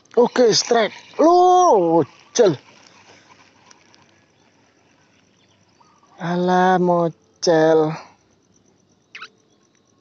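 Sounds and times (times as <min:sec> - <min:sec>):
faint high ticking: 0:00.0 - 0:09.9.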